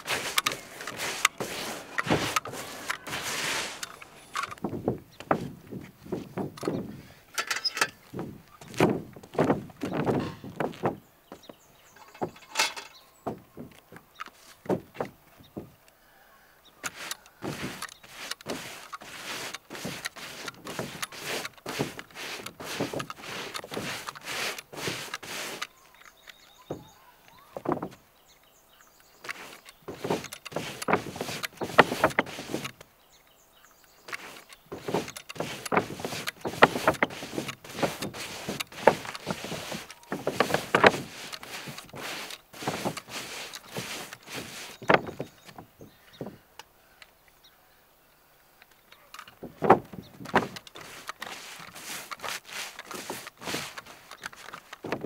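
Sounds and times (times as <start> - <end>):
brush scraping tar on roof: 0.0 - 7.1, 8.1 - 12.4, 16.8 - 28.0, 29.2 - 32.8, 34.1 - 46.3, 49.4 - 55.0.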